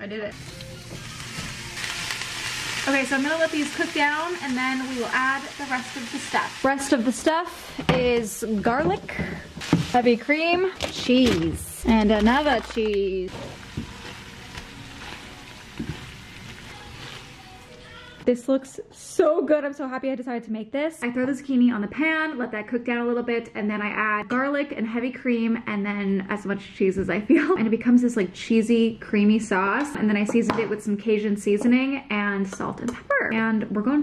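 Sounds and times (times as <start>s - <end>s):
noodles sizzling in frying pan: 0.3s - 10.5s, 12.3s - 18.2s.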